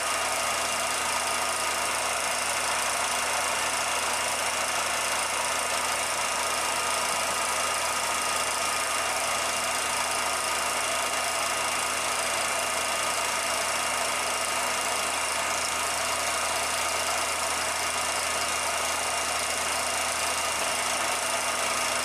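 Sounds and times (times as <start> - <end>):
film projector whirring: 0.0 - 22.0.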